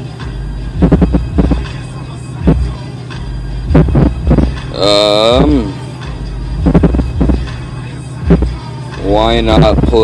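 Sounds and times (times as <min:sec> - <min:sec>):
bass-heavy music on car stereo: 0:00.0 - 0:10.0
steady low hum: 0:00.1 - 0:10.0.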